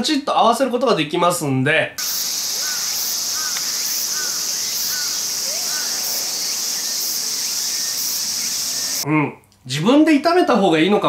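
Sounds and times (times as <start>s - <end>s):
high-pitched insect chorus: 2.0s - 9.0s
short chirping call: 2.0s - 9.0s.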